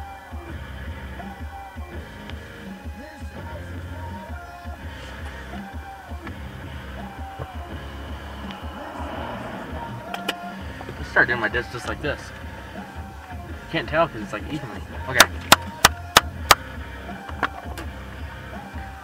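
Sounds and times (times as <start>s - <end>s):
heavy steady bass: 0.0s - 19.0s
music over car stereo: 0.0s - 19.0s.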